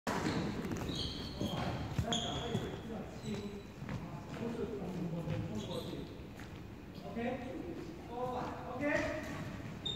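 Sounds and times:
shoes squeaking on wooden court: 0:00.1 - 0:04.5, 0:05.3 - 0:07.1, 0:09.0 - 0:09.9.

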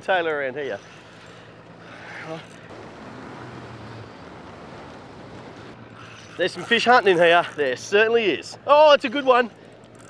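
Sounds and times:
choppy water around boat: 0:00.0 - 0:10.0
wind: 0:00.0 - 0:10.0.

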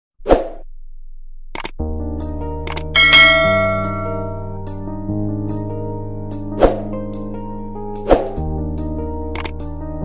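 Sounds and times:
background music with sustained chords: 0:01.8 - 0:10.0
notification bell ding: 0:03.0 - 0:04.5
short mouse clicks: 0:09.3 - 0:09.6.

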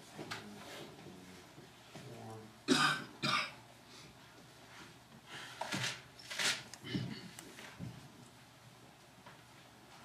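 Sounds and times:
person coughing: 0:02.7 - 0:03.6, 0:06.8 - 0:07.4.

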